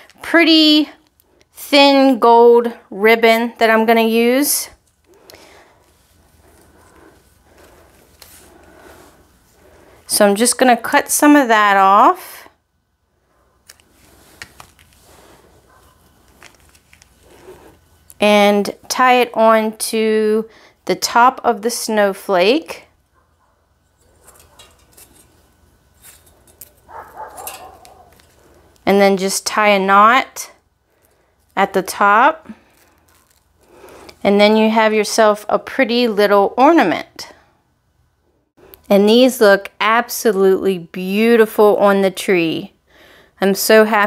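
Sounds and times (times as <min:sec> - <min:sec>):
ribbon rustling: 0:04.7 - 0:09.9, 0:13.6 - 0:18.2, 0:23.4 - 0:28.8, 0:32.4 - 0:34.2
ribbon rustling and clicks: 0:13.6 - 0:15.0, 0:15.7 - 0:17.4, 0:26.0 - 0:28.8, 0:32.7 - 0:34.2.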